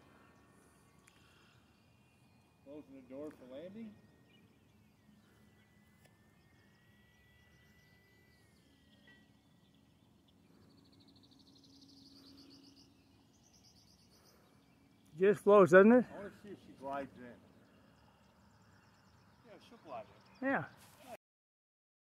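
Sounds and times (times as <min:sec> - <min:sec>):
thin steady tone: 0:00.0 - 0:20.5
faint rapid chirping: 0:00.0 - 0:21.2.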